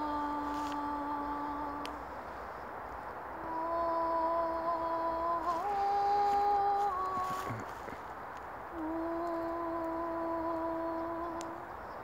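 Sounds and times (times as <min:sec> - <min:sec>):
woman singing sustained notes: 0:00.0 - 0:02.6, 0:03.2 - 0:12.0.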